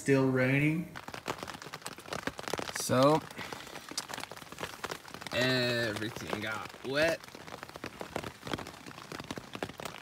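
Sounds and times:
heavy rain on a tent: 0.0 - 10.0.

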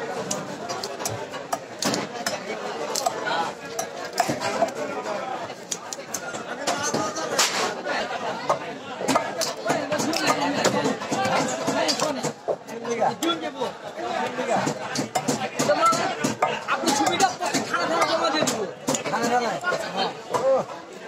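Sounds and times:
background chatter of voices: 0.0 - 21.0.

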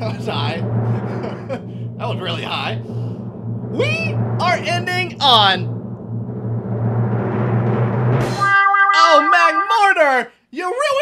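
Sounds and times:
timpani drum roll: 0.0 - 9.7
cymbal crash: 0.0 - 9.8
held brass chord: 7.2 - 10.2.

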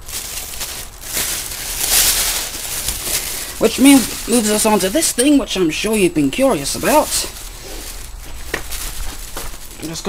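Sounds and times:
plastic carrier bag rustling: 0.0 - 10.0.

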